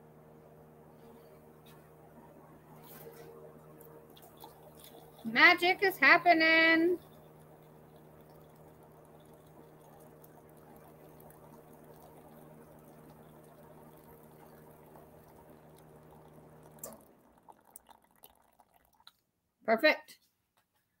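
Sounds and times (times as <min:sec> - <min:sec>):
water trickling into glass cup: 0:02.8 - 0:19.3.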